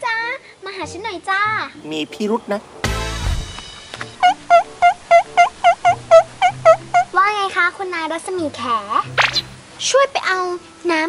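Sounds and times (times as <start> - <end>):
quick bouncy pitched notes: 3.5 - 7.3, 9.1 - 9.6.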